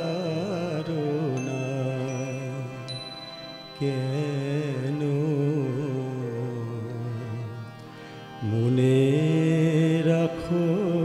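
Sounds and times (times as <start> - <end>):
harmonium and synthesizer chord: 0.0 - 11.0.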